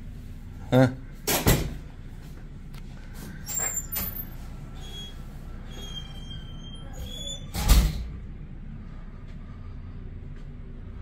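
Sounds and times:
steady low hum: 0:00.0 - 0:06.8, 0:07.6 - 0:11.0.

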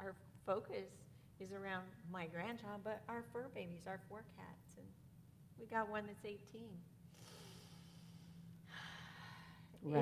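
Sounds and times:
woman speaking: 0:00.0 - 0:04.9, 0:05.6 - 0:06.8
person breathing: 0:07.1 - 0:09.8.

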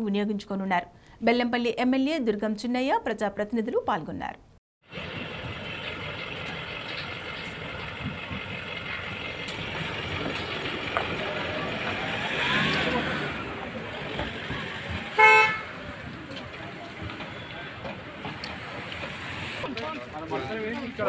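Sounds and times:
outdoor background noise: 0:00.0 - 0:21.0
vehicle horn toot: 0:15.1 - 0:15.8.

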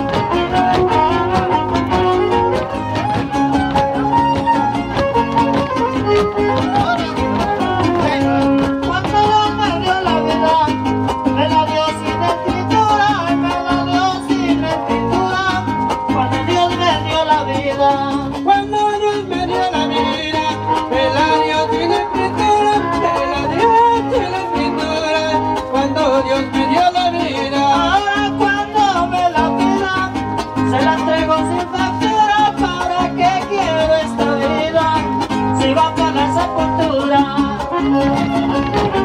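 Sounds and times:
fiddle melody: 0:00.0 - 0:39.0
strummed guitars: 0:00.0 - 0:39.0.

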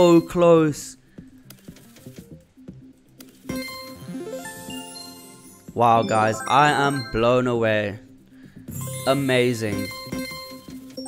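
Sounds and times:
slot game reel-spin clicks and notes: 0:03.5 - 0:08.0, 0:08.8 - 0:11.0.

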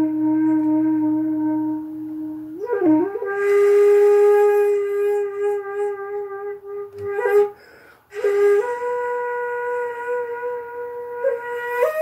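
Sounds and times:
flute playing slow melody: 0:00.0 - 0:12.0.

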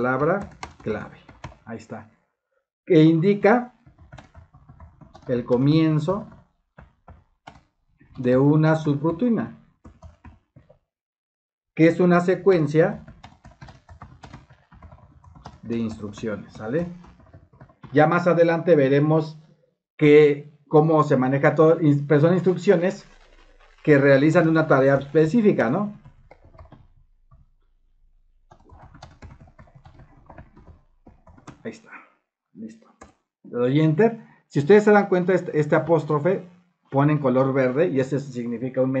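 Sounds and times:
typing on computer keyboard: 0:00.0 - 0:01.7, 0:03.7 - 0:08.4, 0:09.8 - 0:10.8, 0:13.0 - 0:18.4, 0:22.4 - 0:27.4, 0:28.5 - 0:31.8.

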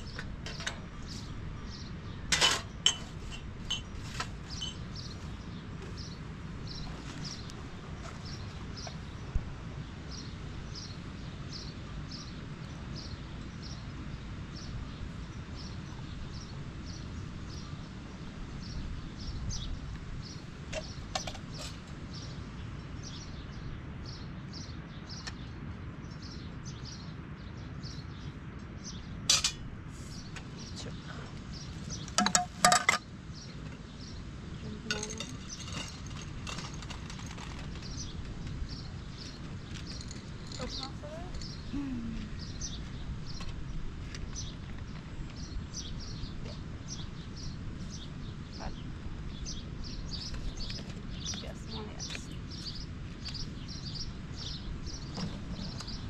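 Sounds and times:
outdoor background noise: 0:00.0 - 0:56.0.

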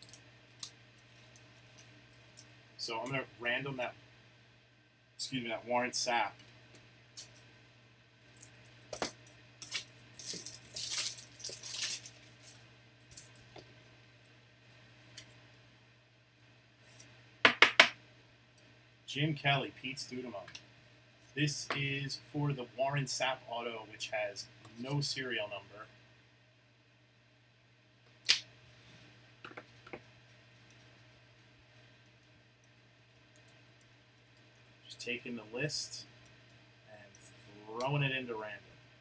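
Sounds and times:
faint low hum: 0:00.0 - 0:39.0
trading cards rustling and clicking: 0:08.2 - 0:13.6.

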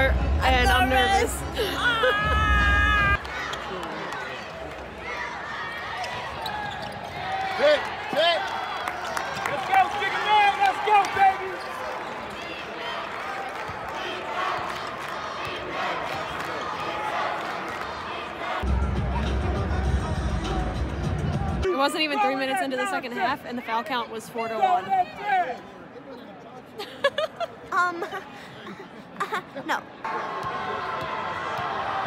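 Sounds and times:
background music: 0:00.0 - 0:03.2, 0:18.6 - 0:21.9
crowd voices: 0:00.0 - 0:32.0
shoe squeaks: 0:06.0 - 0:07.2.

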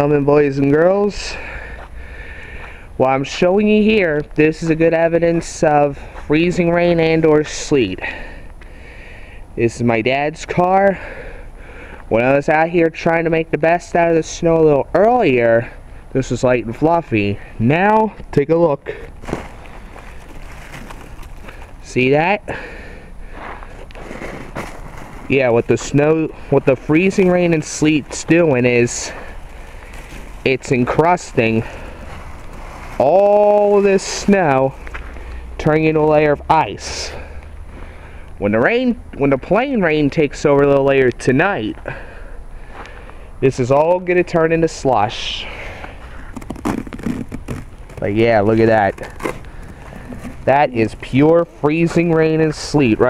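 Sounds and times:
hand scraping icy snow: 0:18.9 - 0:36.6, 0:44.7 - 0:53.0
fingers scraping ice crust: 0:46.2 - 0:50.5.

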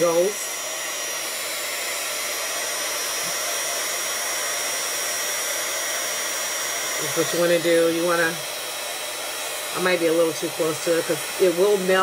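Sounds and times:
heat tool blowing hot air: 0:00.0 - 0:12.0.

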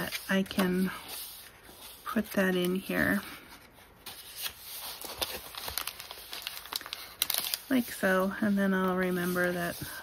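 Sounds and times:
paper rustling: 0:00.0 - 0:10.0.

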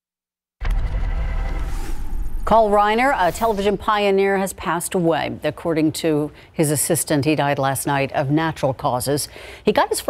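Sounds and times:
steady rushing transition effect: 0:00.6 - 0:04.3.

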